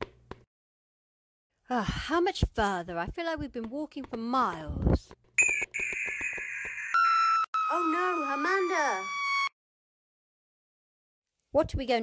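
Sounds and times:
voice: 1.7s - 5.1s, 7.7s - 9.1s, 11.6s - 12.0s
synthetic electronic tones: 5.4s - 9.5s.

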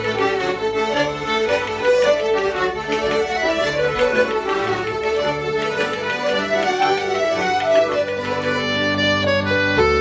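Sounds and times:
button accordion: 0.0s - 10.0s
fiddles playing: 0.0s - 10.0s.

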